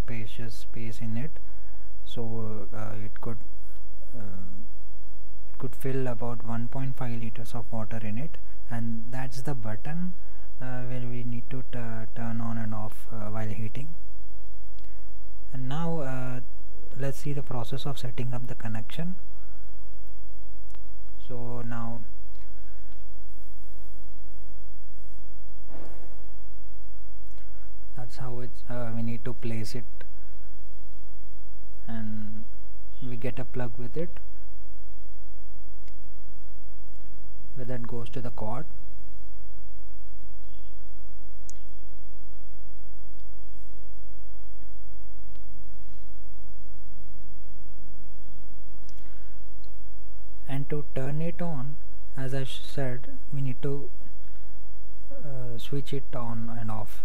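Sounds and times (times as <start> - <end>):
electrical mains hum: 0.0 - 57.0.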